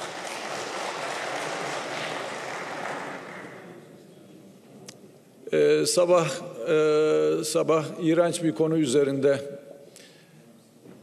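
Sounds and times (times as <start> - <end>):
crowd applauding in a large hall: 0.0 - 3.9.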